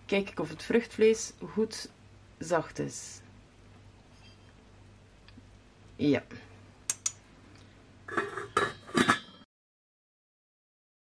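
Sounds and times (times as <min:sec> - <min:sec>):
metal pot lid clinking: 0:08.1 - 0:09.4.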